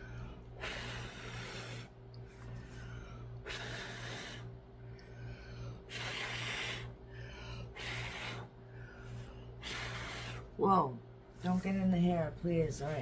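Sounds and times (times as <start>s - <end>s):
person blowing by mouth: 5.9s - 6.9s, 7.8s - 8.5s.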